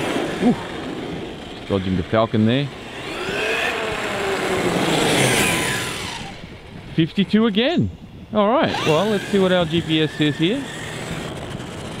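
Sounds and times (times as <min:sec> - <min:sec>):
rc truck electric motor whining: 0:00.0 - 0:12.0.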